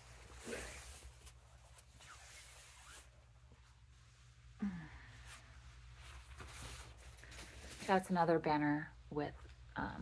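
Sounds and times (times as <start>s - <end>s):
low steady hum: 0.0s - 10.0s
paper banner rustling: 5.5s - 8.3s.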